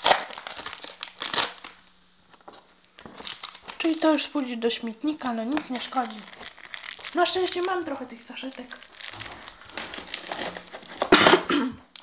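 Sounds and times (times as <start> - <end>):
card packet wrapping rustling: 0.0 - 11.3
person coughing: 11.1 - 11.9.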